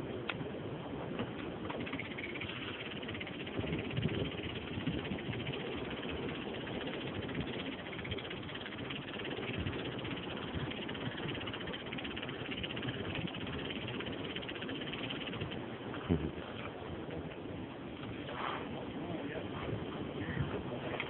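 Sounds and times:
sea: 0.0 - 21.0
wind: 0.0 - 21.0
wind buffeting microphone: 0.0 - 21.0.

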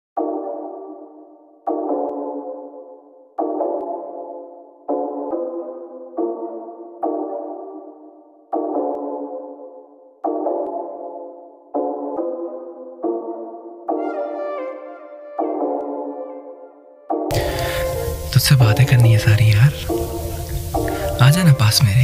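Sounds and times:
synthesizer chords: 11.8 - 22.0.

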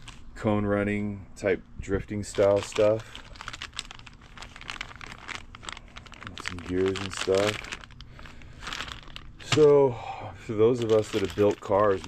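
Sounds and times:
plastic bag crinkling: 0.0 - 0.2, 2.2 - 9.9, 10.6 - 12.0.

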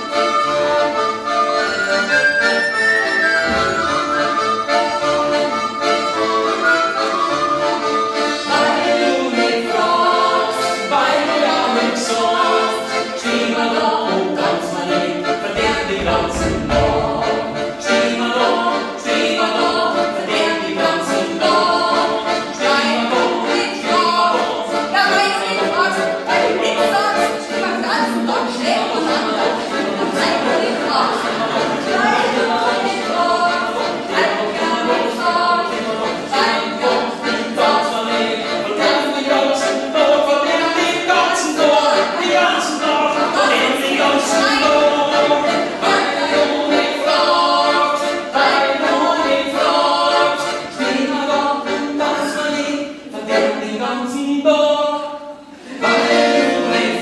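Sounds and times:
piano accordion: 0.0 - 57.0
group singing in unison: 3.1 - 57.0
woman singing folk song: 21.4 - 31.3, 31.9 - 36.8.

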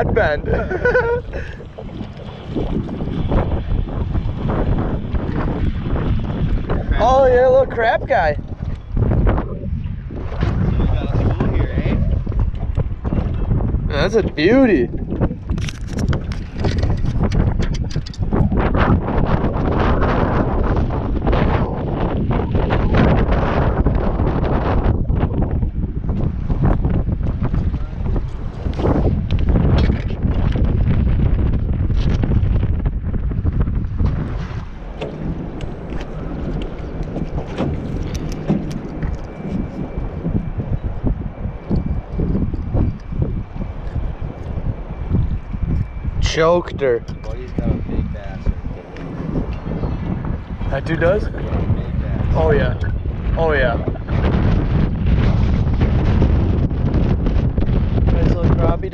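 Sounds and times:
wind buffeting microphone: 0.0 - 58.9.

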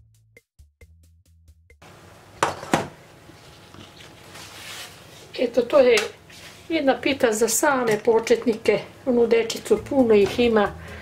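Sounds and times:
pastry sheet rustling: 3.2 - 7.0.

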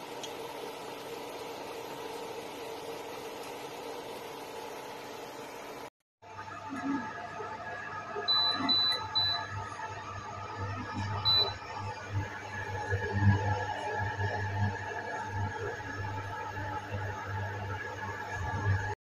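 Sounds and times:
cooker electrical hum: 0.0 - 5.9, 6.6 - 19.0.

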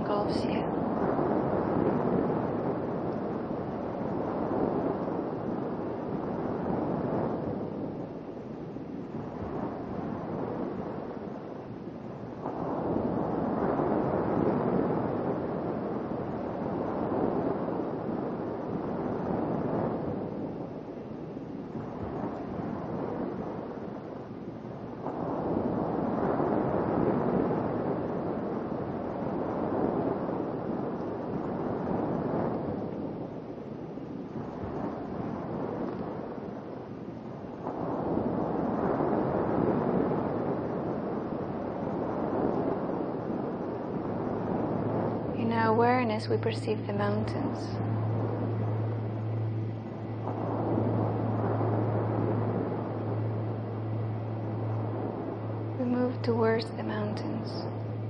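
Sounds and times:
ocean waves washing onto shore: 0.0 - 58.0.

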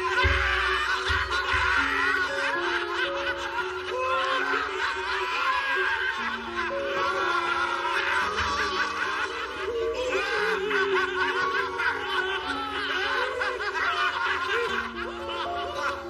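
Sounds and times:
background music sustained notes: 0.0 - 16.0
men laughing: 0.0 - 16.0.

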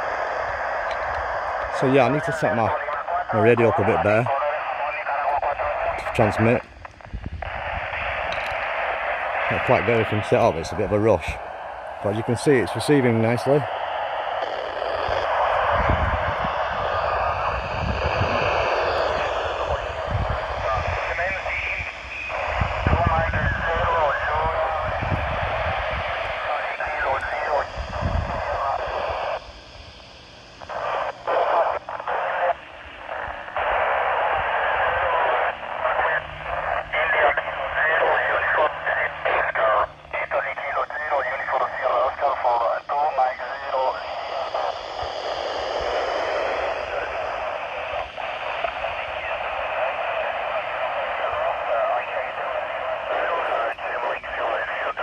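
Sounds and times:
radio hiss: 0.0 - 55.0
tinny radio speech: 1.5 - 6.7, 7.4 - 13.8, 14.4 - 29.5, 30.6 - 55.0.

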